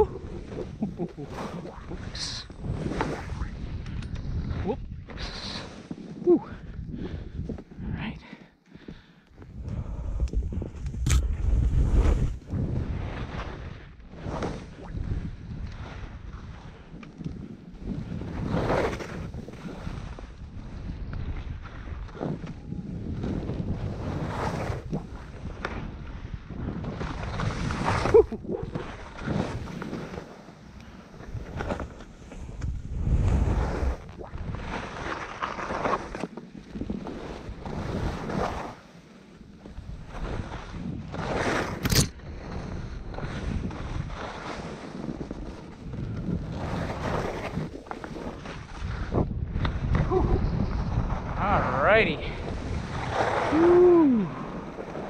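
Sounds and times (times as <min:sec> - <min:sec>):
skis swishing through snow: 0:00.2 - 0:06.2, 0:11.3 - 0:55.0
wind buffeting microphone: 0:09.4 - 0:14.0, 0:31.1 - 0:34.9, 0:45.0 - 0:55.0.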